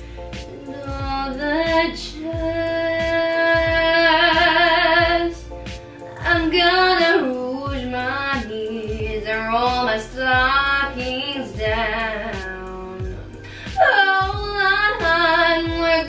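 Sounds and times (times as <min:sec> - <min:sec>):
young woman singing: 0:00.4 - 0:05.4, 0:06.1 - 0:16.0
accompaniment with steady beat: 0:07.7 - 0:16.0.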